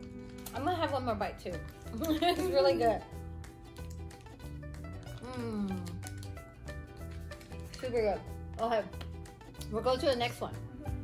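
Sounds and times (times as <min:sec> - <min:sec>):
soft instrumental music: 0:00.0 - 0:11.0
woman speaking: 0:07.8 - 0:09.0, 0:09.7 - 0:10.6.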